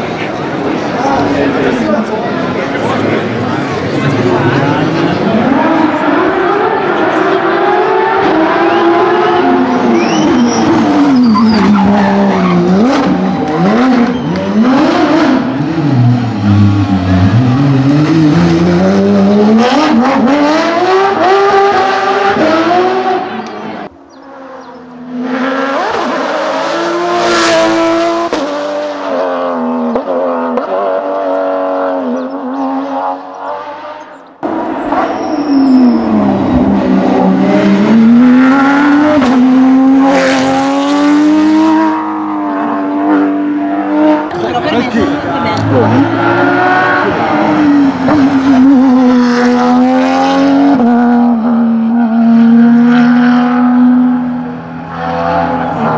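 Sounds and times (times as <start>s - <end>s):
rally car engine revving: 0.0s - 55.9s.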